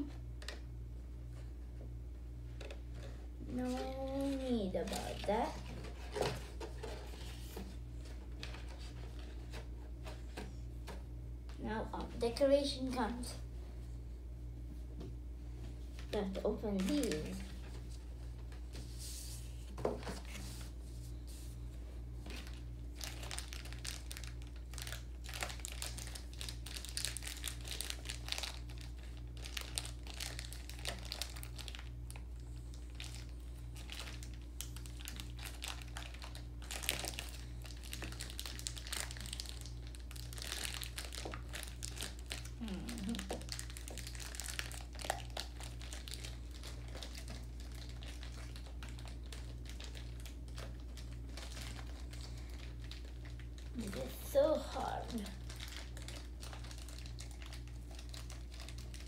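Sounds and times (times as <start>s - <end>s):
plastic packaging crinkling: 2.6s - 11.0s, 15.9s - 21.6s, 22.2s - 59.0s.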